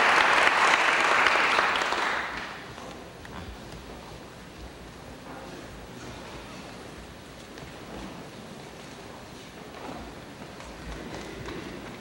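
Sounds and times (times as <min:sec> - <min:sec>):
steady hiss: 0:00.0 - 0:12.0
soft footsteps and shuffling: 0:02.6 - 0:12.0.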